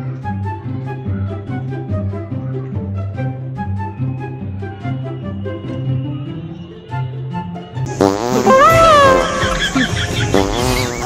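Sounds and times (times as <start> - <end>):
background music: 0.0 - 11.0
wet fart sound effect: 7.9 - 11.0.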